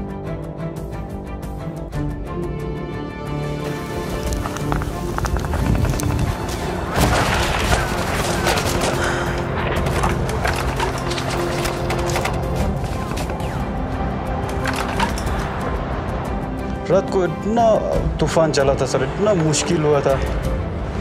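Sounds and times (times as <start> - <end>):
background music with held notes: 0.0 - 21.0.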